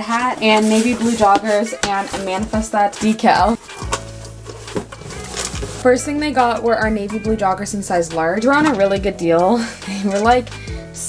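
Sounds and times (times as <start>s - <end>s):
soft background music: 0.0s - 11.0s
cardboard box flaps scraping: 0.4s - 5.9s.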